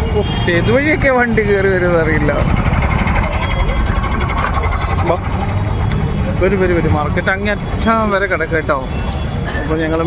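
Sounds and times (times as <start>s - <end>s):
crowd bustle: 0.0s - 10.0s
rumble of vehicle engines: 0.0s - 10.0s.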